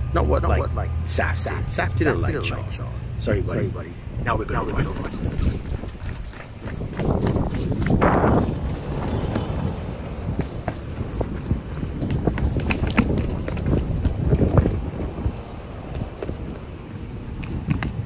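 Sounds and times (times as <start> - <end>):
wind rumble on microphone: 1.5 - 18.0
running footsteps: 3.7 - 18.0.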